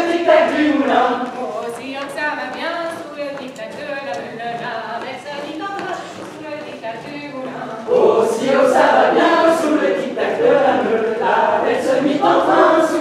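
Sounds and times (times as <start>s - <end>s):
group singing unaccompanied: 0.0s - 2.2s, 7.1s - 13.0s.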